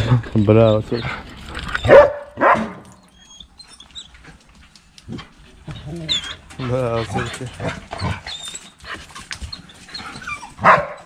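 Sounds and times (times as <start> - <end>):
puppies barking: 0.0 - 4.0, 6.0 - 11.0.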